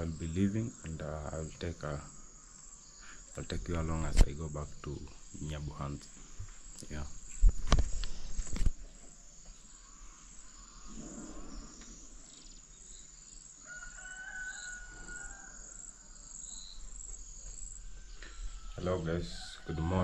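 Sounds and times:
crickets chirring: 0:00.0 - 0:20.0
rooster crowing: 0:13.6 - 0:16.2, 0:17.8 - 0:20.0.

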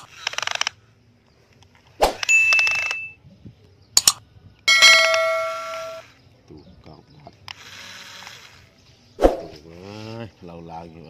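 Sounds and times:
short swishes: 0:02.0 - 0:02.3, 0:09.2 - 0:09.6
bell ringing: 0:02.3 - 0:03.2, 0:04.7 - 0:06.0.

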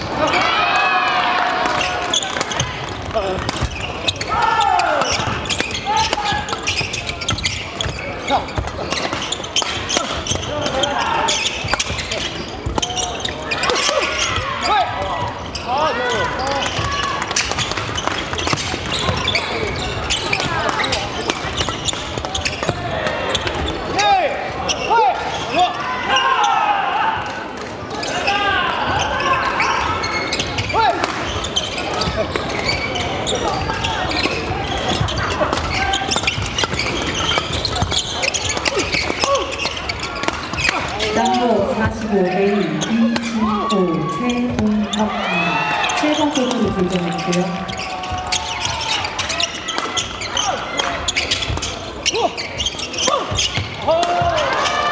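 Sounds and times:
shoes squeaking on wooden floor: 0:01.6 - 0:26.6, 0:27.9 - 0:54.9
rackets striking shuttlecock: 0:33.5 - 0:41.0.

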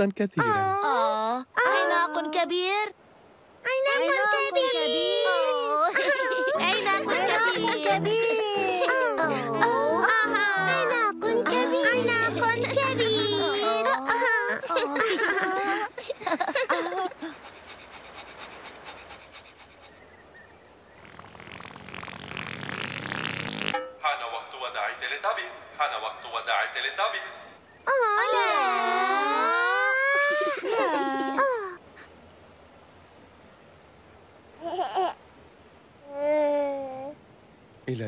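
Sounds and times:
baby babbling and cooing: 0:00.4 - 0:02.5, 0:03.7 - 0:15.9, 0:34.6 - 0:35.2, 0:36.0 - 0:37.2
fast sparkly ticking: 0:16.2 - 0:20.0
birdsong chirps: 0:17.3 - 0:26.7, 0:31.7 - 0:38.0.

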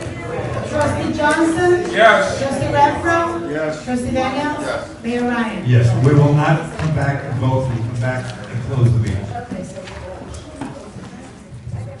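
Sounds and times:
indistinct voices in large room: 0:00.0 - 0:12.0.

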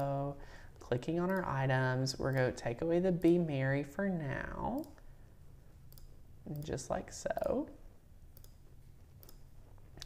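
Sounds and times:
computer mouse clicks: 0:00.8 - 0:01.6, 0:02.2 - 0:03.5, 0:04.6 - 0:05.0, 0:05.9 - 0:07.6, 0:08.3 - 0:10.0.

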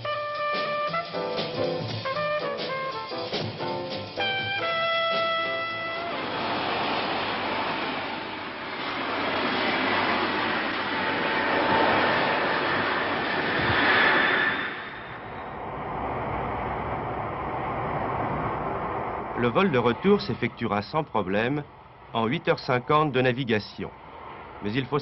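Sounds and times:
jet engines roaring: 0:00.0 - 0:25.0.

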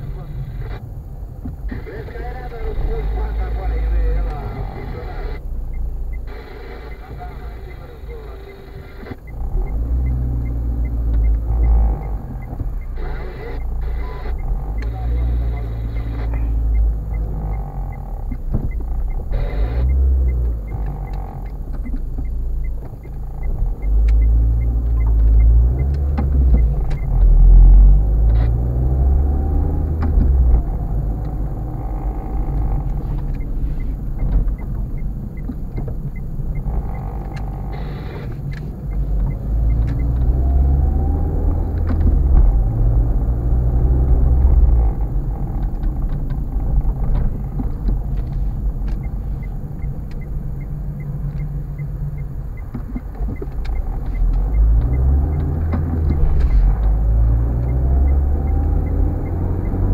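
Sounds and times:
car engine rumble: 0:00.0 - 0:59.9
road noise inside car: 0:00.0 - 0:59.9
faint regular ticking: 0:00.1 - 0:59.9.

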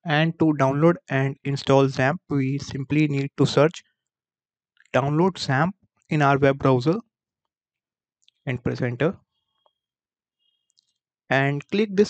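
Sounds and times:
person speaking: 0:00.1 - 0:03.8, 0:05.0 - 0:07.0, 0:08.5 - 0:09.2, 0:11.3 - 0:12.0.

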